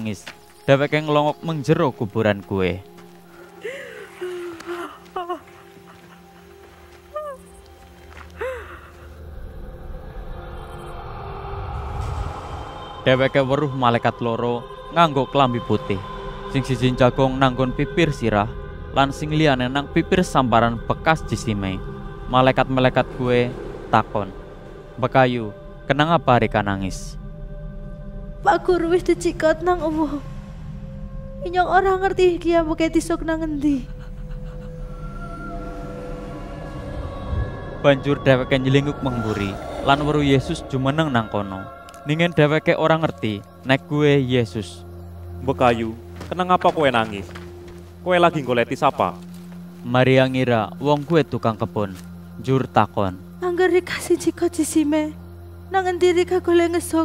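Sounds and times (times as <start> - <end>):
low music drone: 0.0 - 57.0
woman sobbing: 3.5 - 7.5, 8.3 - 9.2, 33.5 - 35.6
woman weeping: 3.6 - 7.5, 8.3 - 9.1, 33.6 - 35.6.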